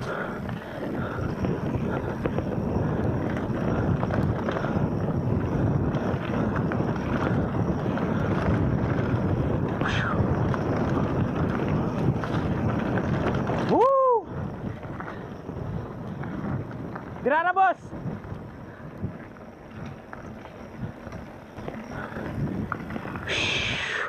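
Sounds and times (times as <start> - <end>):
bike tyres rolling over gravel: 0.0 - 24.0
wind buffeting microphone: 0.0 - 24.0.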